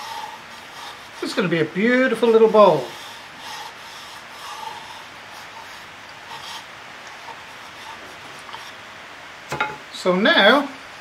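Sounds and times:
hand rubbing wooden bowl: 0:00.0 - 0:08.8
faint steady hiss: 0:00.0 - 0:11.0.

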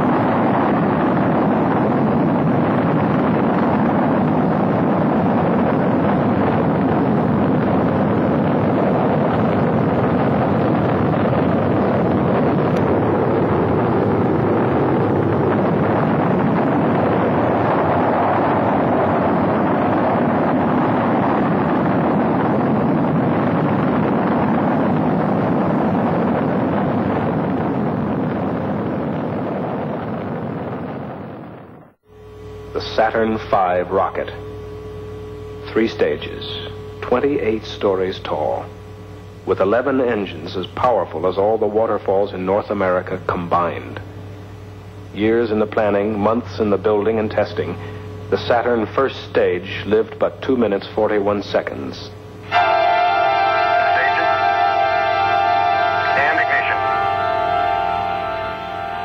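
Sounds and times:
rocket engines roaring: 0:00.0 - 0:59.0.

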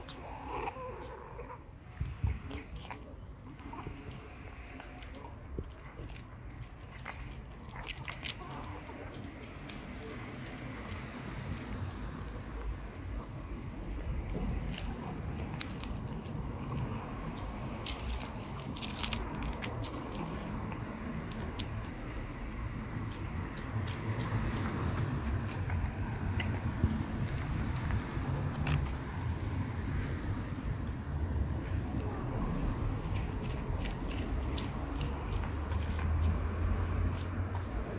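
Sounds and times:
cat chewing and lip-smacking: 0:00.0 - 0:37.9
low outdoor rumble: 0:00.0 - 0:37.9.

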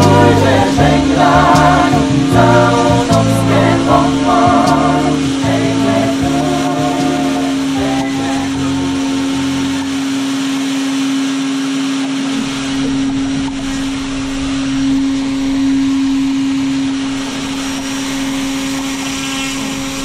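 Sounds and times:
model airplane motor whine: 0:07.6 - 0:20.0.

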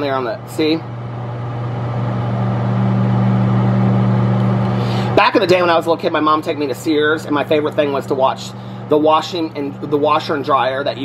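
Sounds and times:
microwave oven humming: 0:00.0 - 0:11.0.

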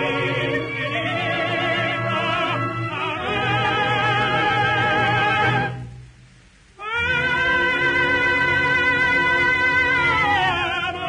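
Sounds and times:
operatic voice singing with vibrato: 0:00.0 - 0:05.8, 0:06.8 - 0:11.0.

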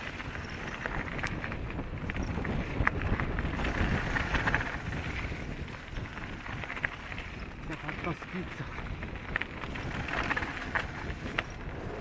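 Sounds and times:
bike rattling over bumps: 0:00.0 - 0:12.0
bike tyres rumbling on dirt: 0:00.0 - 0:12.0.

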